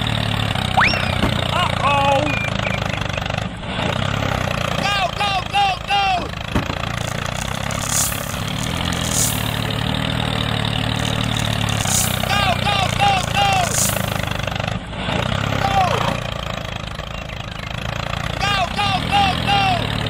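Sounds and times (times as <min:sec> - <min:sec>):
tractor engine idling: 0:00.0 - 0:20.0
short high bending calls: 0:00.7 - 0:01.2.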